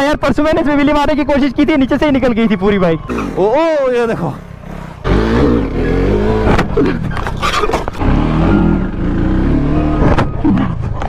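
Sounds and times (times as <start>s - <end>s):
vehicle engine revving: 2.9s - 11.0s.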